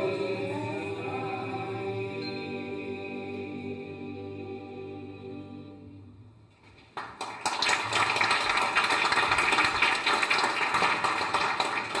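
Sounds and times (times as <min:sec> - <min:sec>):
orchestra and choir chord: 0:00.0 - 0:06.4
audience applause: 0:06.9 - 0:12.0.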